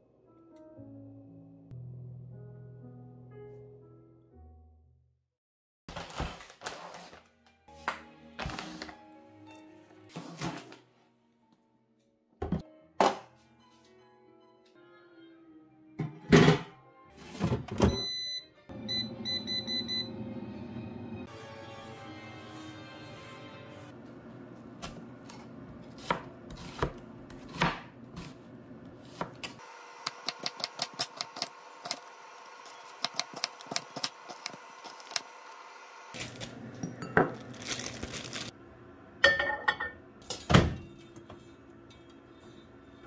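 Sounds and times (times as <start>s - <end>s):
soft background music: 0.0s - 4.8s, 6.9s - 24.0s
knife chopping on cutting board: 24.8s - 28.4s, 29.0s - 32.0s.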